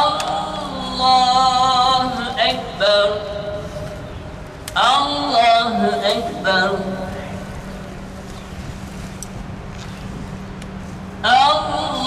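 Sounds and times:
low outdoor rumble: 0:00.0 - 0:12.0
steady low hum: 0:00.0 - 0:12.0
wind buffeting microphone: 0:06.4 - 0:12.0.

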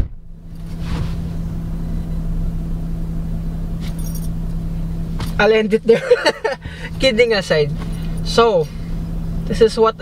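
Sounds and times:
car door thumping shut: 0:00.0 - 0:00.3
diesel engine idling: 0:00.0 - 0:10.0.

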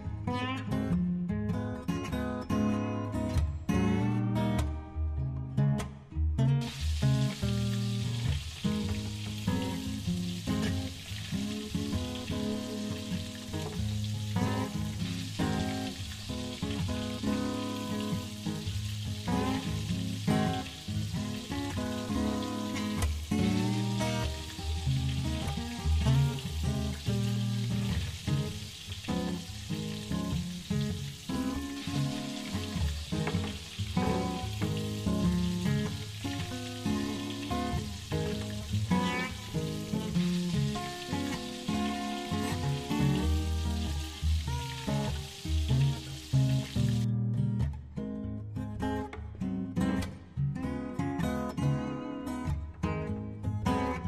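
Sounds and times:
background guitar music: 0:00.0 - 0:54.0
pancakes sizzling in oil: 0:06.7 - 0:47.0.

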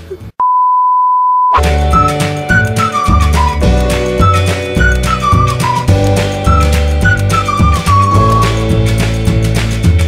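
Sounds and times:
high bleep tone: 0:00.4 - 0:01.6
music with strong beat: 0:01.6 - 0:10.0.

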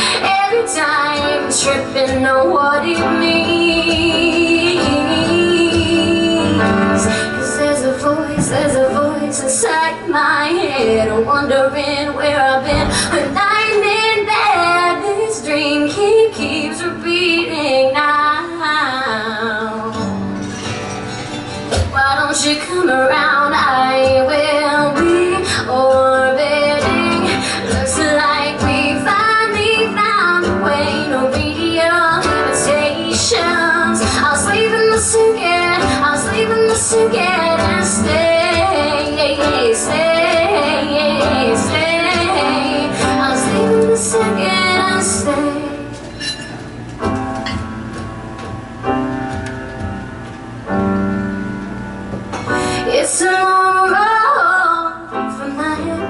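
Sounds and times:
woman singing pop song: 0:00.0 - 0:20.3, 0:21.6 - 0:46.5, 0:52.4 - 0:56.0
acoustic guitar strumming: 0:00.0 - 0:53.4.

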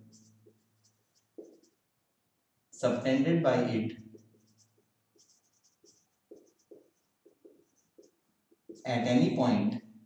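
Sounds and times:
marker writing on whiteboard: 0:00.0 - 0:01.9, 0:03.6 - 0:09.4.

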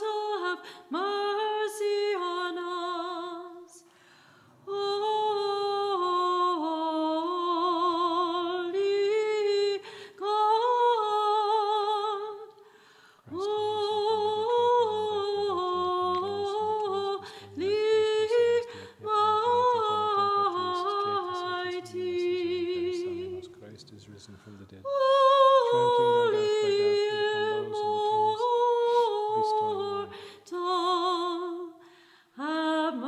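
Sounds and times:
person chanting: 0:13.3 - 0:31.1.

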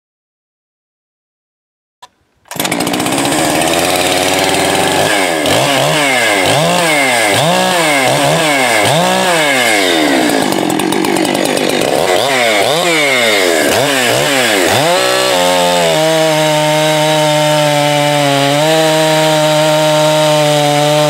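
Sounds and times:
chainsaw revving: 0:02.5 - 0:21.0.

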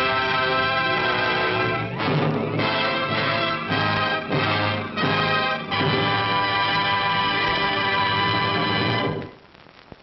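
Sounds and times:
orchestral sustained chord: 0:00.0 - 0:09.2
optical track hiss: 0:00.0 - 0:10.0.

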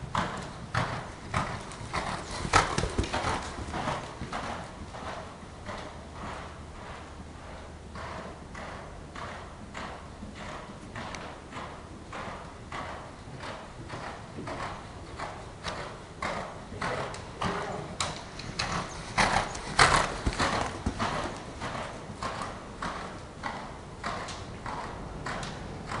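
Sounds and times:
hoofbeats on arena dirt: 0:00.0 - 0:26.0.

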